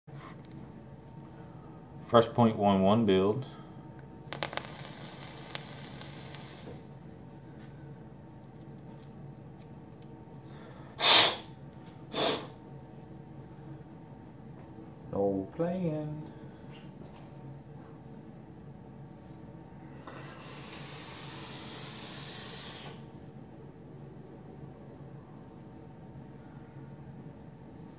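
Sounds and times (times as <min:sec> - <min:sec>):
sharp pops: 0:04.3 - 0:06.7
e-liquid sizzling on coil: 0:04.3 - 0:06.9
vape coil hissing: 0:04.3 - 0:06.9, 0:20.4 - 0:23.1.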